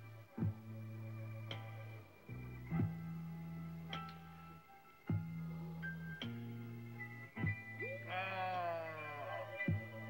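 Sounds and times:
music from vinyl record: 0.0s - 10.0s.

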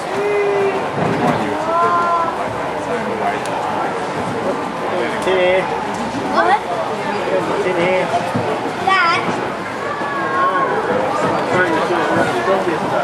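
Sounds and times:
crowd chatter in a hall: 0.0s - 13.0s.

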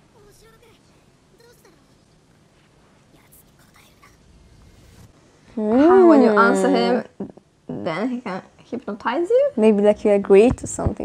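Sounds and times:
faint whispering voices: 3.1s - 4.2s.

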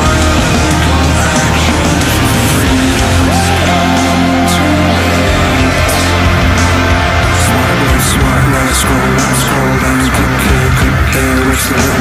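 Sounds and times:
heavy rock music: 0.0s - 12.0s.

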